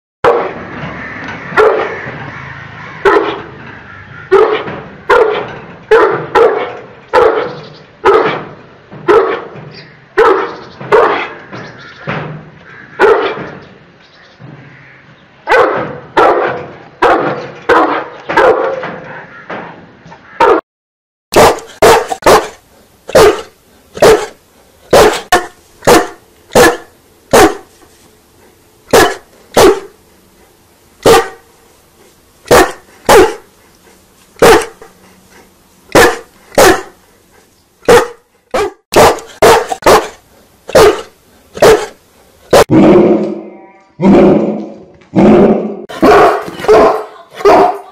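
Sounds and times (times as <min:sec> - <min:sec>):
deep echoing dog barks: 0:00.2 - 0:00.6, 0:01.5 - 0:02.1, 0:02.9 - 0:03.6, 0:04.2 - 0:09.6, 0:10.2 - 0:11.4, 0:12.9 - 0:13.6, 0:15.4 - 0:19.4, 0:20.3 - 0:20.6, 0:21.4 - 0:27.7, 0:28.9 - 0:30.0, 0:31.0 - 0:31.5, 0:32.5 - 0:33.5, 0:34.4 - 0:34.9, 0:35.9 - 0:37.0, 0:37.8 - 0:43.4, 0:44.0 - 0:47.9
dog sharp single barks: 0:04.3 - 0:08.4, 0:20.4 - 0:20.6, 0:21.4 - 0:24.3, 0:24.9 - 0:27.6, 0:28.9 - 0:29.9, 0:31.0 - 0:31.4, 0:32.5 - 0:33.4, 0:34.4 - 0:34.8, 0:36.0 - 0:36.9, 0:37.9 - 0:43.4, 0:46.0 - 0:47.8.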